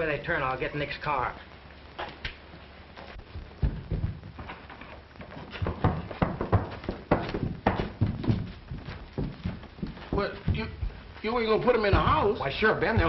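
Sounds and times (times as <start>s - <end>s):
horse hooves clopping: 2.0s - 13.0s.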